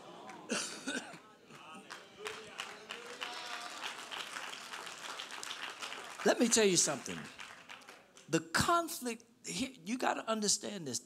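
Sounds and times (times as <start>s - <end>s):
congregation clapping: 0.0s - 8.4s.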